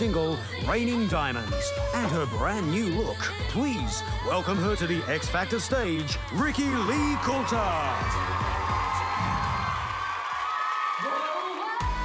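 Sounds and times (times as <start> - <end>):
television intro music: 0.2 - 10.0
studio audience cheering and whooping: 6.3 - 12.0.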